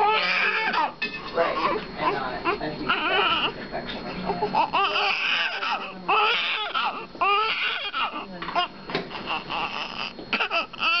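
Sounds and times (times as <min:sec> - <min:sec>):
newborn baby crying: 0:00.0 - 0:01.0, 0:01.6 - 0:03.6, 0:04.3 - 0:11.0.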